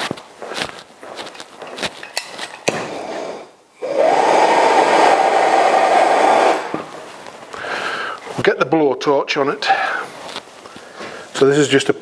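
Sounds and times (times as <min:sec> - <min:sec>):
handling clicks and knocks: 0:01.6 - 0:02.8
blowtorch roaring: 0:02.8 - 0:07.0.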